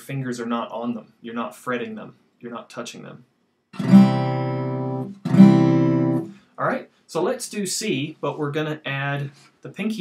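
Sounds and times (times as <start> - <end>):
acoustic guitar chord strums: 3.8 - 6.5.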